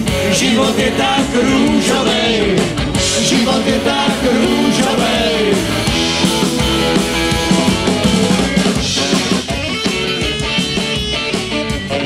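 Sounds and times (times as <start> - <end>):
live rock band playing: 0.0 - 12.0
saxophone: 0.0 - 12.0.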